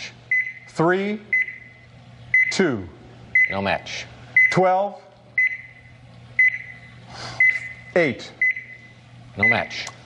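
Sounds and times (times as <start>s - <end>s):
countdown clock beeping: 1.3s - 2.6s, 6.4s - 6.8s, 8.4s - 8.8s.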